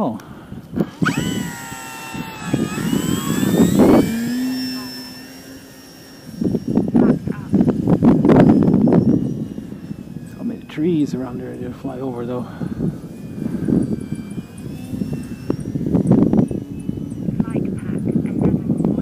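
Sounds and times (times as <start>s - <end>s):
model plane motor and propeller whining: 0.0s - 19.0s
wind rumbling on microphone: 0.0s - 19.0s.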